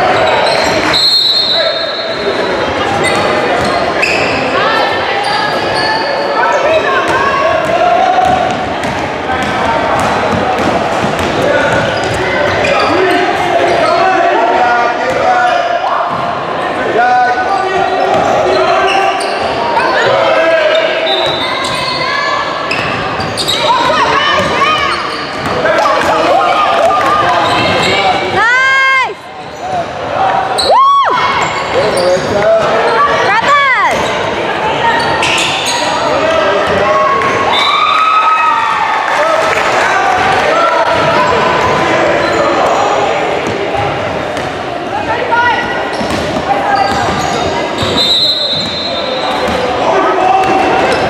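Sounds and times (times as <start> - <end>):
sneaker squeaks on floor: 0.0 - 14.1, 17.5 - 25.7, 27.1 - 28.4, 29.4 - 30.7, 31.3 - 37.7, 45.5 - 49.7.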